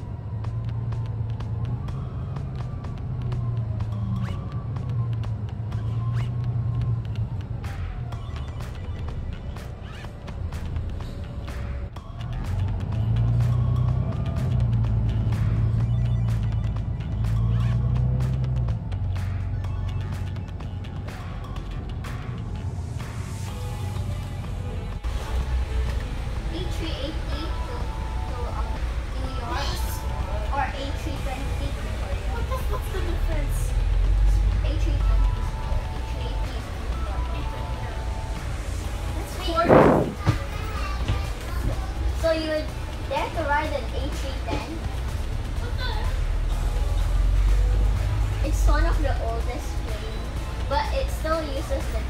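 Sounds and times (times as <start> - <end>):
bus engine droning: 0.0 - 52.0
bus rattling: 0.0 - 52.0
music playing: 0.0 - 52.0
faint voices: 26.6 - 43.4.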